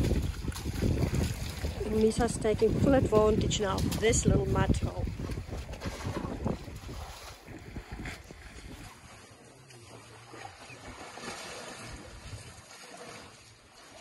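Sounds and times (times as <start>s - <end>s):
wind rumbling on microphone: 0.0s - 9.3s, 11.8s - 12.8s.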